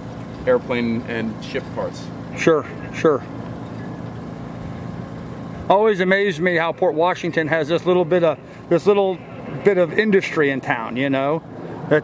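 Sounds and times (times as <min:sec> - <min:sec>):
steady background noise: 0:00.0 - 0:12.0
man speaking: 0:00.5 - 0:03.3, 0:05.7 - 0:12.0.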